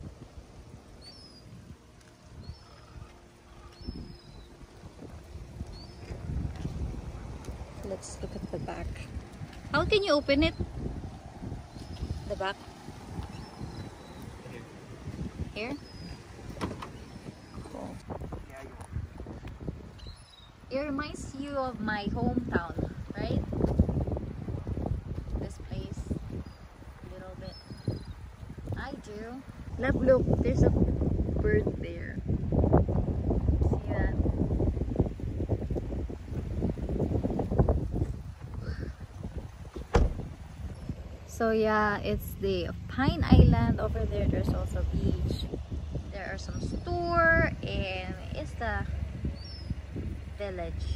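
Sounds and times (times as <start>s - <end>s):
wind buffeting microphone: 0.0s - 50.9s.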